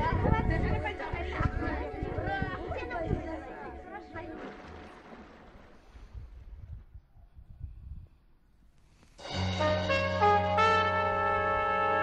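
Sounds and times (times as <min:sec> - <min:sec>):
people chatting: 0:00.0 - 0:04.5.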